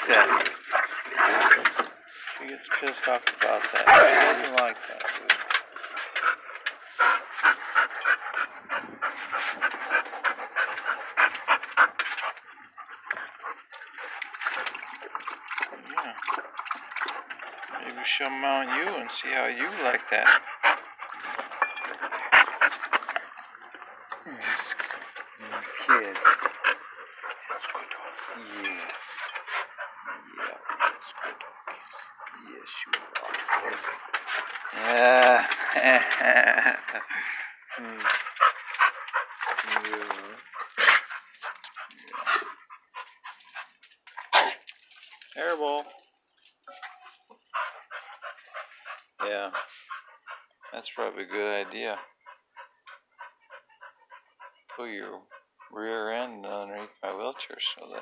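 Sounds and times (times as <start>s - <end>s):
dogs panting: 0.0s - 58.0s
dogs licking: 1.8s - 55.8s.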